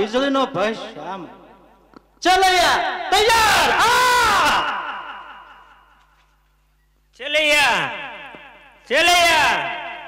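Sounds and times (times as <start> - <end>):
echoing amplified voice: 0.0 - 6.2, 7.1 - 10.0
faint steady hum: 4.7 - 8.9.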